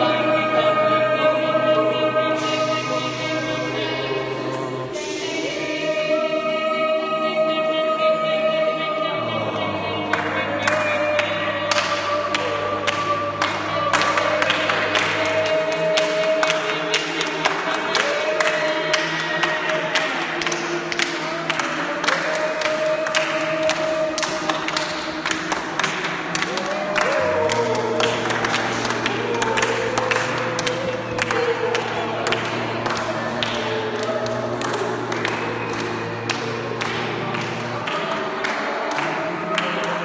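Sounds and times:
people clapping in rhythm: 0.0 - 7.2, 8.0 - 40.0
group singing wavering notes: 0.0 - 40.0
steady low hum: 24.9 - 39.4.

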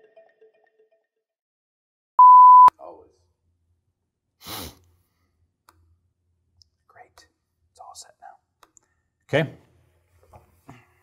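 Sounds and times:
high-pitched electronic beep: 2.2 - 2.7
click: 5.6 - 5.8.

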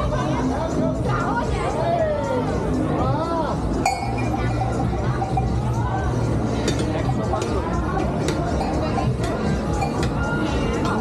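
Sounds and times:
background music: 0.0 - 11.0
voices: 0.0 - 11.0.

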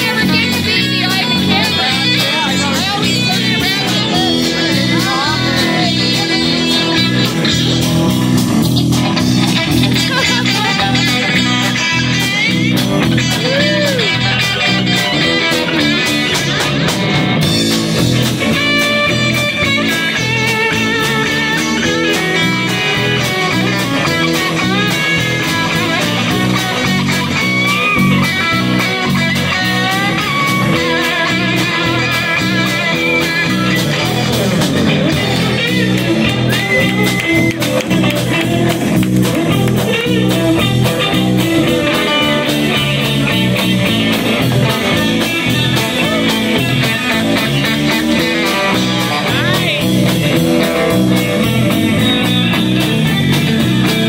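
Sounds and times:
lead guitar bending notes: 0.0 - 54.0
live rock band instrumental: 0.0 - 54.0.

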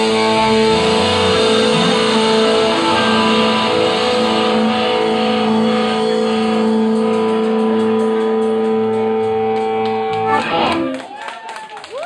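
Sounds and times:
blues harmonica wailing: 0.0 - 11.0
electric guitar and bass chord: 0.0 - 11.0.

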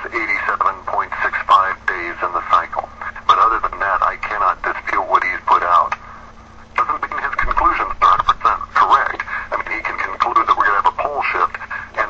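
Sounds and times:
faint steady hum: 0.0 - 12.0
radio talk show speech: 0.0 - 12.0.

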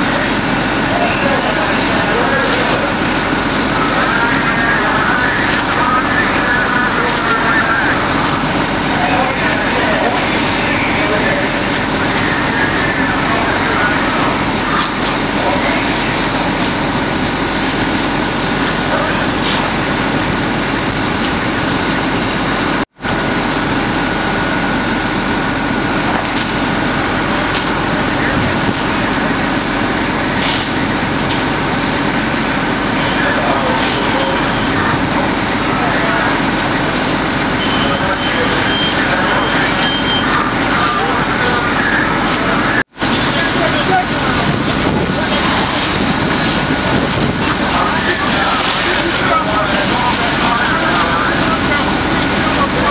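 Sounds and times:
heavy truck engines running: 0.0 - 52.9
indistinct voices: 0.0 - 52.9.

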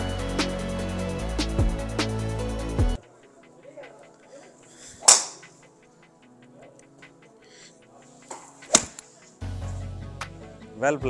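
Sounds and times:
golf club striking ball: 5.0 - 5.5, 8.3 - 9.1.

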